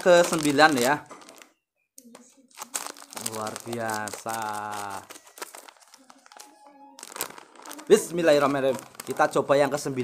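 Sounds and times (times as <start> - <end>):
plastic snack packet crinkling: 0.0 - 10.0.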